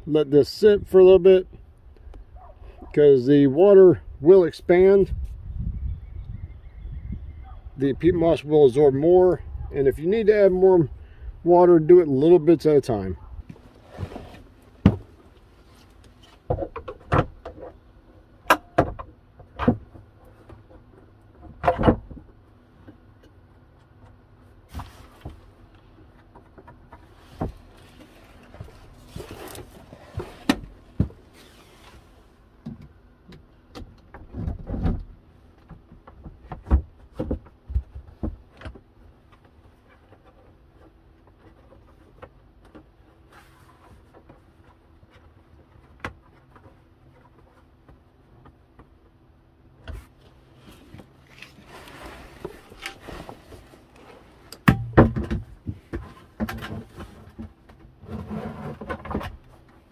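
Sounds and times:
hard plastic knocks and clunks: 21.4s - 22.3s, 54.6s - 59.4s.

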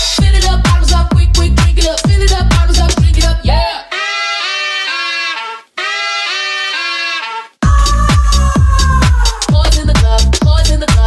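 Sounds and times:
house music lead synth phrase: 0.0s - 11.0s.

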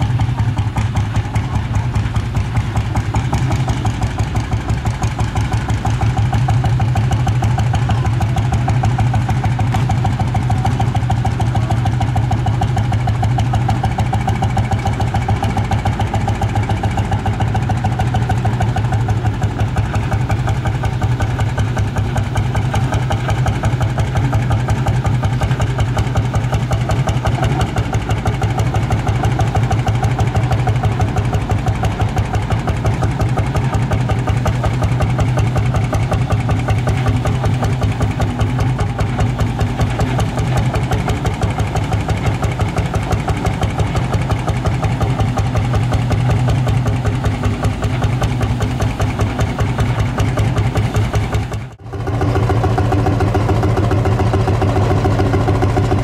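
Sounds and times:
tractor engine running: 0.0s - 56.0s.

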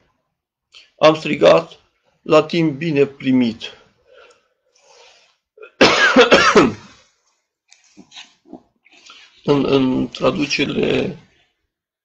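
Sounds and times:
man coughing: 5.6s - 7.0s.

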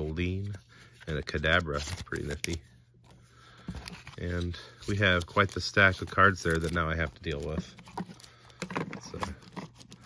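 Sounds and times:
plastic sleeves rustling: 0.0s - 10.0s.

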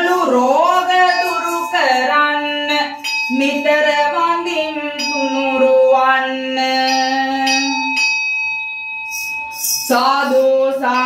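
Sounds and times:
ritual bell ringing: 0.0s - 11.0s.

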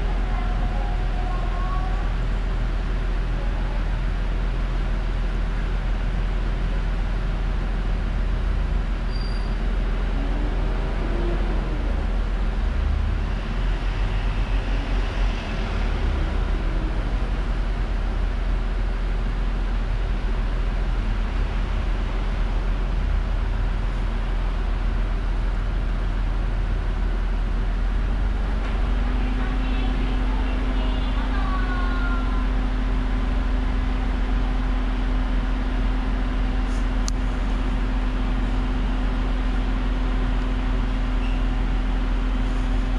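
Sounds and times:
car engine idling: 0.0s - 42.9s
steady hum: 0.0s - 42.9s.

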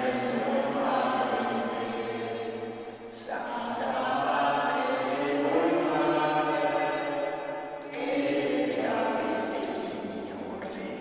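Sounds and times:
voices singing a slow hymn: 0.0s - 11.0s.

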